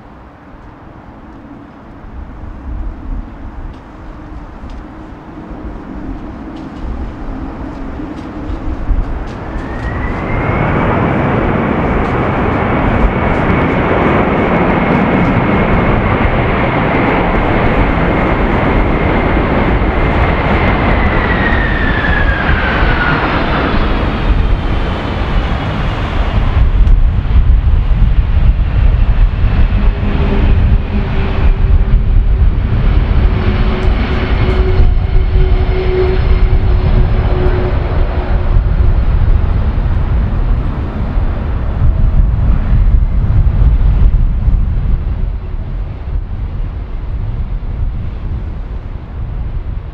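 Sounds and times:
low rumble of jet rollout: 0.0s - 49.9s
jet engines roaring in reverse thrust: 0.6s - 49.8s.

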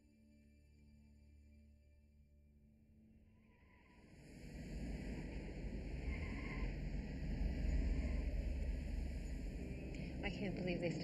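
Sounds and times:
faint sustained musical tones: 0.0s - 11.0s.

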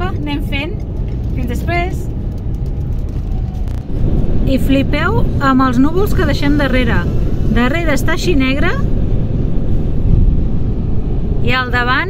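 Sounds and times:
car interior rumble at speed: 0.0s - 12.0s.

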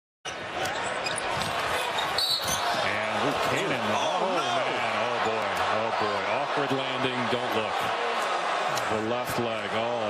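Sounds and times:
arena crowd noise: 0.2s - 10.0s.

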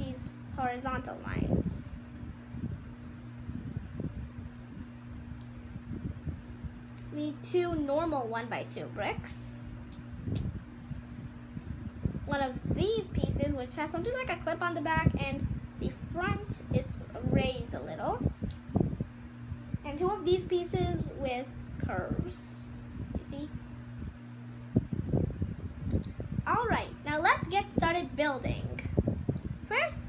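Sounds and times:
low room hum: 0.0s - 30.0s.

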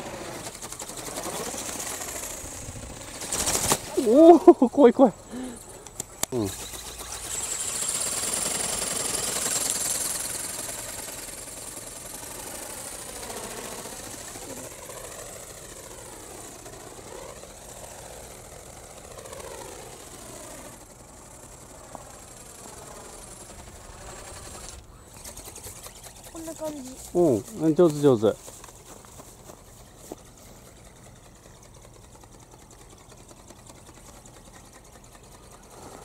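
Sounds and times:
electric motor buzzing whine: 0.0s - 31.6s.

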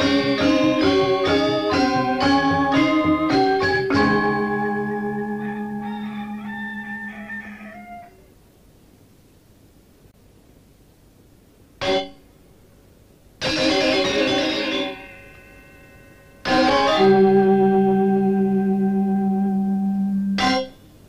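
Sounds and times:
gamelan bronze instruments ringing: 0.0s - 5.8s
loud gamelan stroke: 0.0s - 5.8s, 13.4s - 20.8s
tape hiss: 0.0s - 21.0s
high wavering tone: 13.5s - 20.8s
large gong humming: 14.2s - 20.5s.

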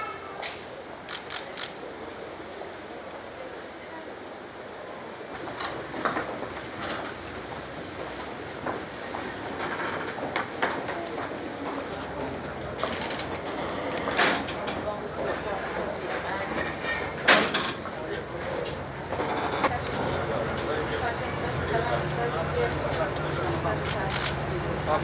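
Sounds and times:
indistinct crowd voices: 0.0s - 25.0s.

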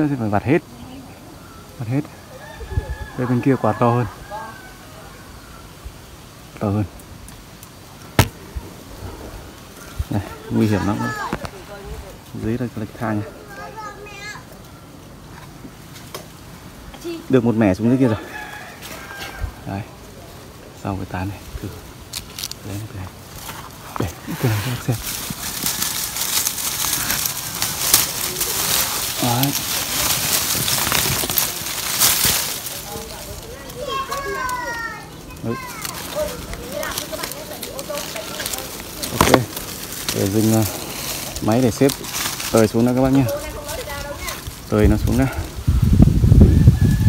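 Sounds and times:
leaves and twigs rustling: 0.0s - 47.0s
sharp snaps of branches: 7.0s - 8.9s, 24.4s - 44.7s
sharp knock: 8.2s - 8.4s
soft low thud: 8.2s - 8.5s.

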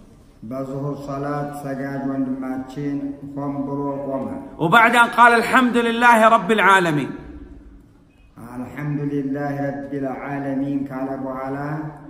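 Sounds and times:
man chanting recitation: 0.4s - 7.3s, 8.4s - 12.0s.

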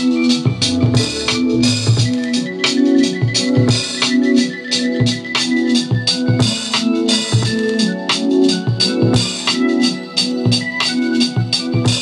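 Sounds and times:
electronic drum beat: 0.0s - 12.0s.

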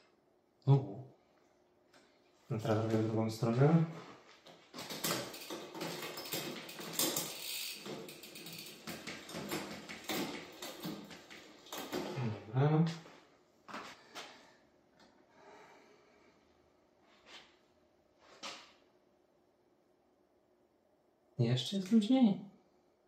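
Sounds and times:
bicycle chain rattling and clicking: 4.8s - 12.2s
person grunting: 12.2s - 12.6s.

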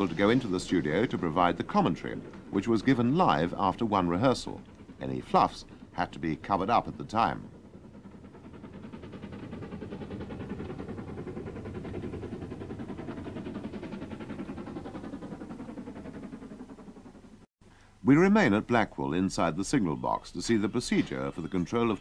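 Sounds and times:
steam locomotive chuffing: 0.0s - 22.0s.

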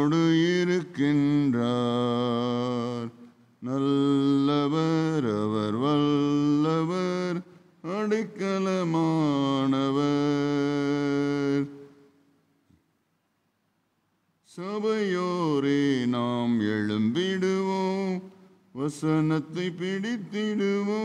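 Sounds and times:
man singing worship song: 0.0s - 12.2s, 14.4s - 21.0s.

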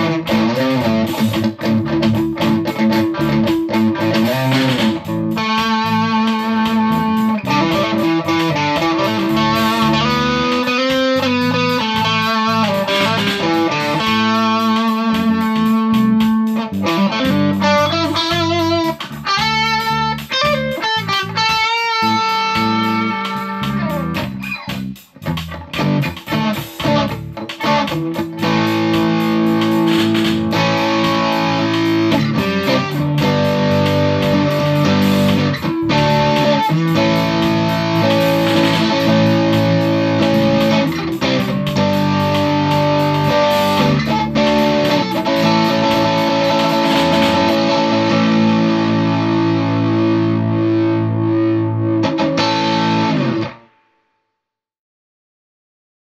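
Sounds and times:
distorted electric guitar chords: 0.0s - 54.0s.

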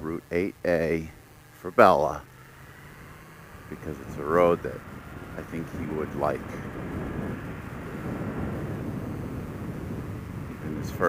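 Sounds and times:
motorcycle engine running: 0.0s - 11.0s
wind noise on microphone: 3.0s - 11.0s.

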